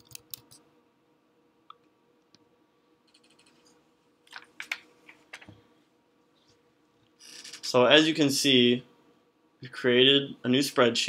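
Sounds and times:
computer keyboard keystrokes: 3.1 - 3.6.

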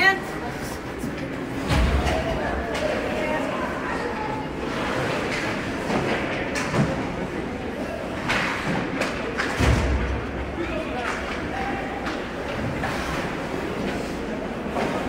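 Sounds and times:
voices of players and spectators: 0.0 - 15.0.

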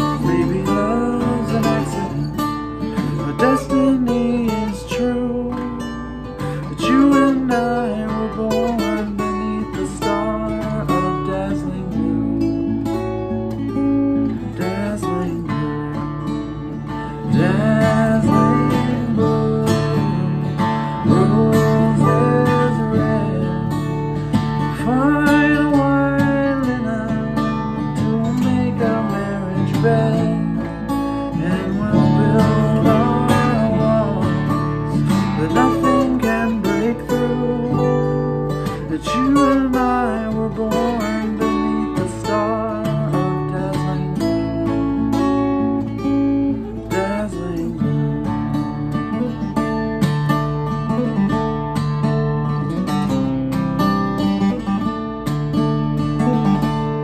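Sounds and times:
man singing wordlessly: 0.0 - 13.0, 13.8 - 48.9
acoustic guitar: 0.0 - 57.0.

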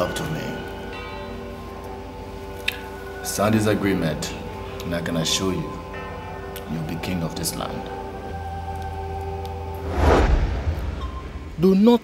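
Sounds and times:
low drone: 9.4 - 11.9
loud rising swell: 9.7 - 11.7.

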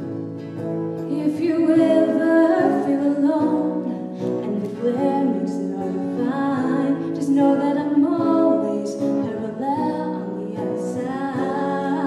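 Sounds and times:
acoustic guitar: 0.0 - 12.0
woman singing through microphone: 1.0 - 12.0.

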